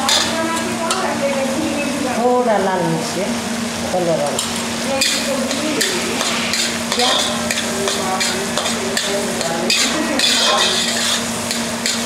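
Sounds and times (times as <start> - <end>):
tomatoes sizzling: 0.0 - 12.0
metal spatula scraping pan: 5.0 - 12.0.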